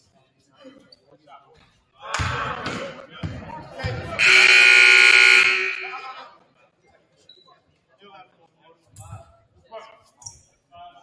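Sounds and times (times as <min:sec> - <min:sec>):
scoreboard horn blast: 0:04.2 - 0:06.0.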